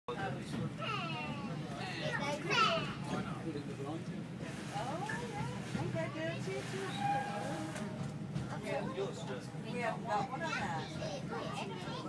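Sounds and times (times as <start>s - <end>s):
train carriage running noise: 0.1s - 12.0s.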